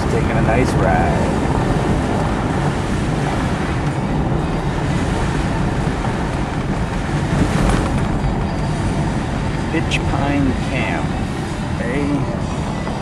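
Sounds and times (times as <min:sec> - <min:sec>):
car engine running: 0:00.0 - 0:13.0
tyres rumbling on pavement: 0:00.0 - 0:13.0.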